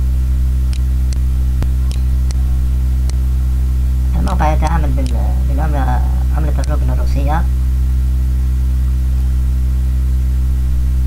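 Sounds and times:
buzzy electrical hum: 0.0s - 11.0s.

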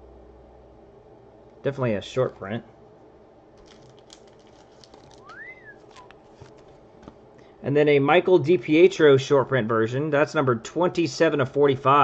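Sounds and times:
trading card clicks: 3.6s - 7.2s
whistle-like gliding tone: 5.2s - 6.1s.

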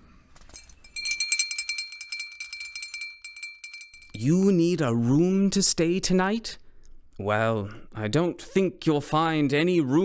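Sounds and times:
jingle bells shaken: 0.5s - 4.3s
steady ringing tone: 0.5s - 4.4s.

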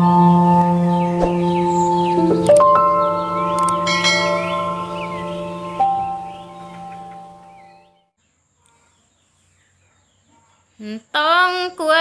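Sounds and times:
low held drone: 0.0s - 7.8s
bell-like jingle tones: 2.7s - 7.4s.

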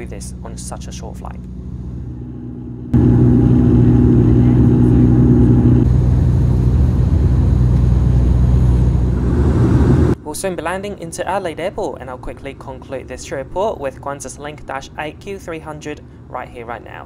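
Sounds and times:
turboprop engine drone: 0.0s - 10.2s.

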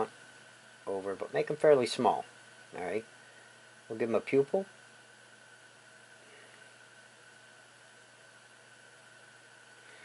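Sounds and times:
thin high whine: 0.0s - 8.3s.

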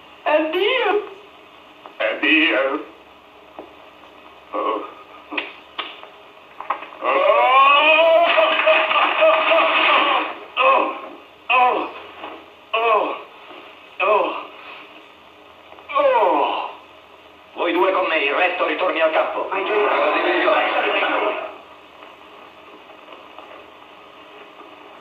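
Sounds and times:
man sobbing and wailing: 7.0s - 11.9s.

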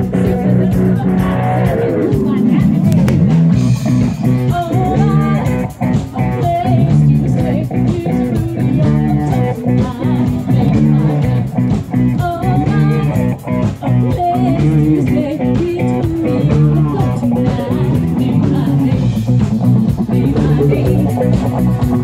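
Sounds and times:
woman singing into a microphone: 0.0s - 2.9s, 4.4s - 19.3s, 20.0s - 21.4s
bass guitar: 0.0s - 22.0s
electric guitar: 0.0s - 22.0s.

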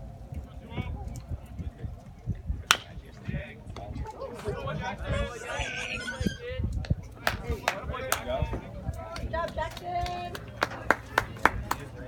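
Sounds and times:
spectators murmuring: 0.4s - 12.0s
baseball bat crack: 2.6s - 3.0s.

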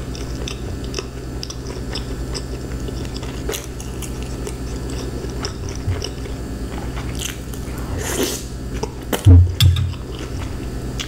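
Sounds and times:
chewing crunchy cabbage: 0.0s - 11.0s
steady low hum: 0.0s - 11.0s.

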